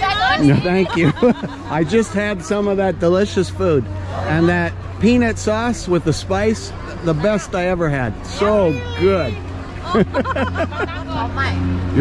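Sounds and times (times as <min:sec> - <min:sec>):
people talking: 0:00.0 - 0:12.0
steady low hum: 0:00.0 - 0:12.0.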